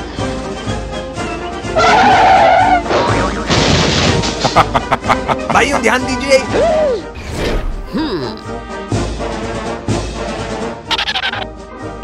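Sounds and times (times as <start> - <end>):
background music: 0.0 - 12.0
cartoon skid screech: 1.8 - 2.9.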